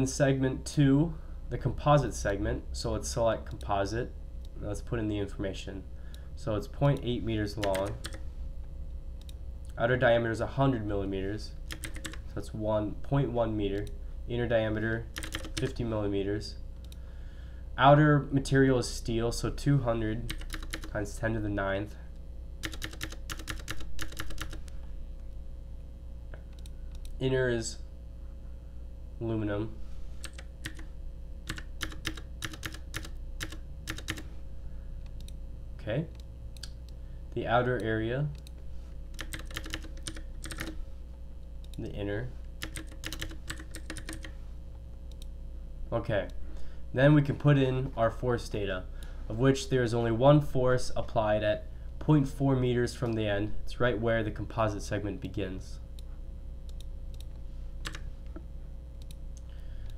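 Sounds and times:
low steady hum: 0.0s - 59.9s
computer keyboard typing: 7.6s - 8.2s, 11.7s - 12.2s, 15.1s - 15.8s, 20.3s - 21.0s, 22.6s - 24.7s, 30.2s - 30.9s, 31.5s - 34.3s, 39.2s - 40.8s, 42.6s - 44.3s, 56.7s - 58.0s.

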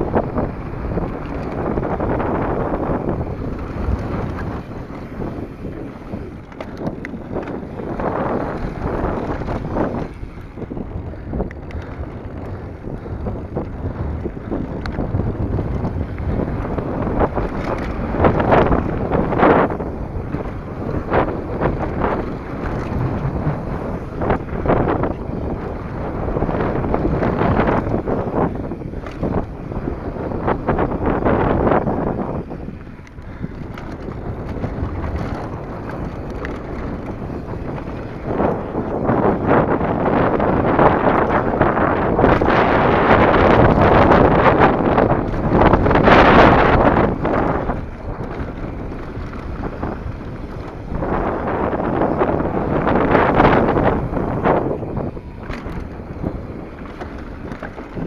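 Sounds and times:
bike knocks and rattles: 0.0s - 58.0s
bike tyres rolling on dirt: 0.0s - 58.0s
wind rushing over microphone: 0.0s - 58.0s.

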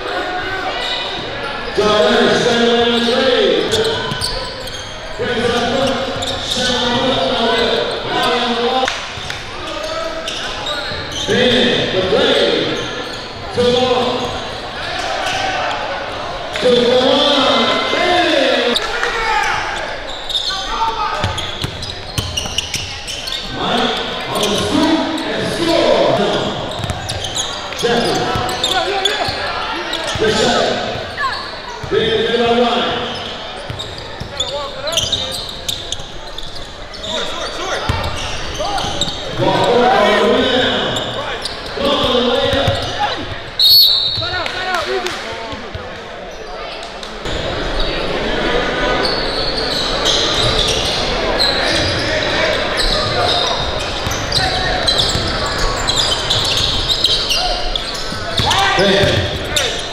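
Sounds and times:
crowd voices in a gym: 0.0s - 59.9s
referee's whistle: 43.5s - 44.4s.

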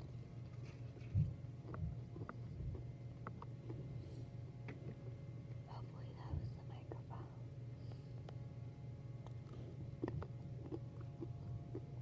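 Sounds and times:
close-up chewing: 0.0s - 5.6s, 7.8s - 12.0s
steady low hum: 0.0s - 12.0s.

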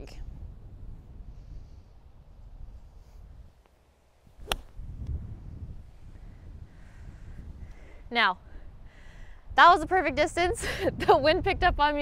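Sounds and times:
wind noise on microphone: 0.0s - 3.6s, 4.2s - 12.0s
golf club striking ball: 4.4s - 4.8s.

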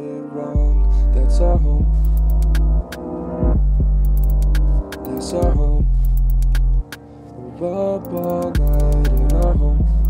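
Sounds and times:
deep bass note: 0.6s - 6.9s
hi-hat ticks: 2.0s - 3.0s, 4.0s - 7.0s, 8.0s - 10.0s.

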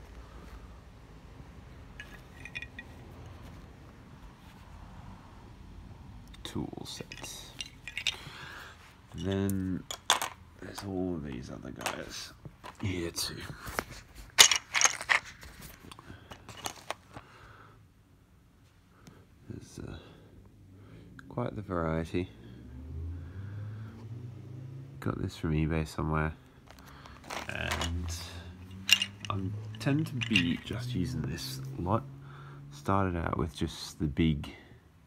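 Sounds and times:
metal tools clinking: 2.0s - 3.5s, 6.9s - 10.9s, 14.3s - 17.0s, 26.7s - 31.0s
plastic case clicking and clattering: 14.4s - 17.1s, 26.7s - 28.2s.

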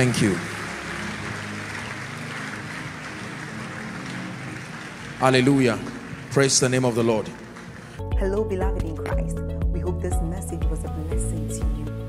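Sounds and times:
congregation applauding: 0.0s - 8.0s
soft sustained music: 0.0s - 12.0s.

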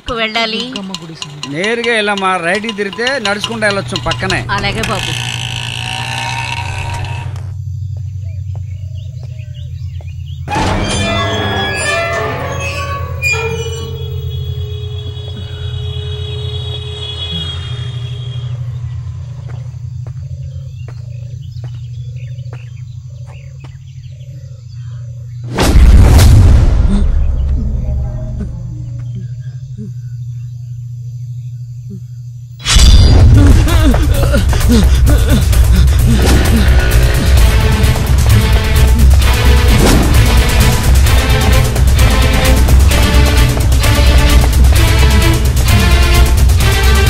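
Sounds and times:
low droning suspense score: 0.0s - 47.0s
faint bird chirps: 17.0s - 25.5s, 27.1s - 33.2s.

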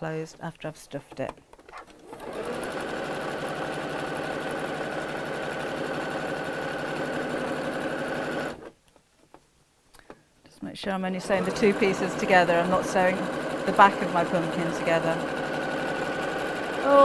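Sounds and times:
electric sewing machine stitching: 1.9s - 8.7s, 11.2s - 17.0s.

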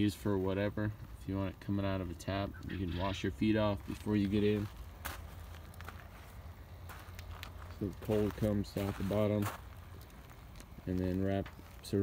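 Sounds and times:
low steady hum: 0.0s - 12.0s
footsteps on gravel: 3.5s - 12.0s.

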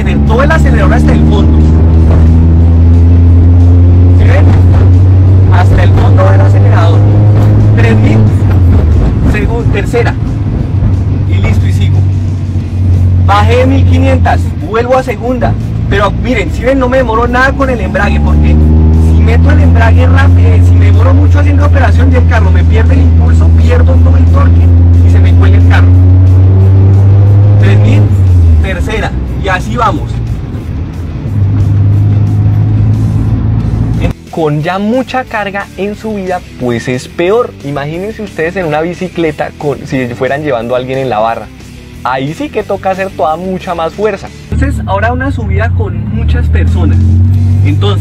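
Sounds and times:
car engine revving from inside cabin: 0.0s - 9.2s, 16.8s - 21.1s, 22.0s - 28.6s, 31.3s - 34.1s, 45.7s - 48.0s.

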